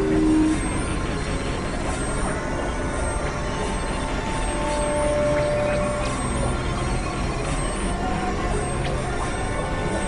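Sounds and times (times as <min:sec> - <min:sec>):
rumbling synthesizer noise drone: 0:00.0 - 0:08.4.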